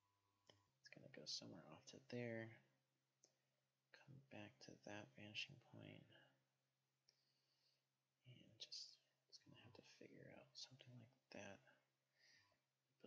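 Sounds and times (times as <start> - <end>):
man muttering softly: 0.9 - 2.6, 4.0 - 6.3, 8.3 - 11.8.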